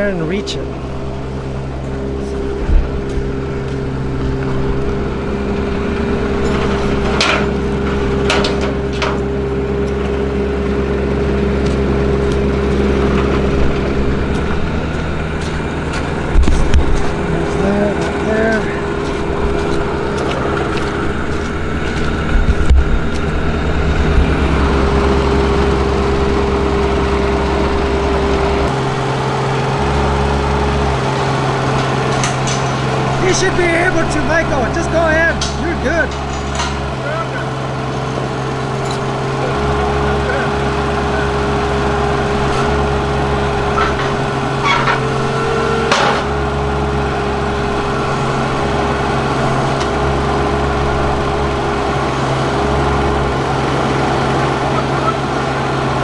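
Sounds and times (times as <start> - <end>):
diesel engine running: 0.0 - 56.0
sharp metal clanks: 35.3 - 36.9.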